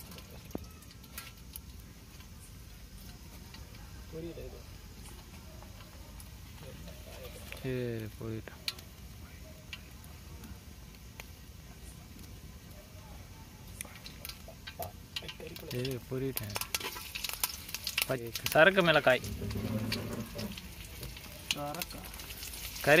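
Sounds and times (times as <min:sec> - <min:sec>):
chillies sizzling in hot oil: 0:00.0 - 0:23.0
oil crackling in a pan: 0:00.0 - 0:23.0.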